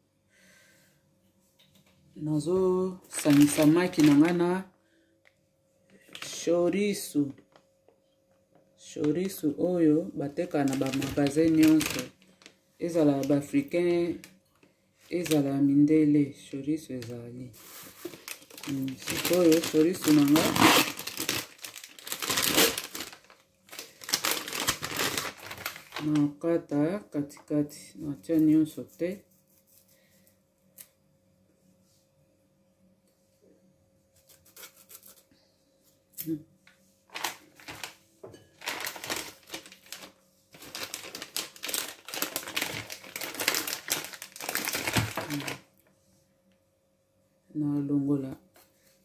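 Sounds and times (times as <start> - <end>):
plastic packaging crinkling: 3.1 - 4.6, 6.0 - 6.6, 10.2 - 14.4, 15.1 - 15.5, 17.0 - 26.4, 37.1 - 38.0, 38.6 - 45.7.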